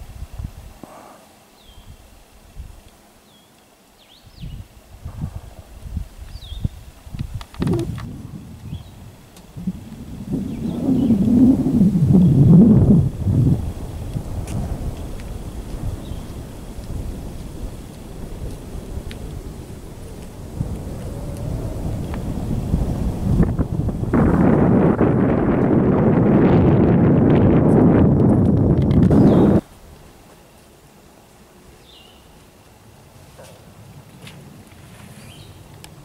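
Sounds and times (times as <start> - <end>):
wind buffeting microphone: 0.0 - 0.8, 4.2 - 29.7.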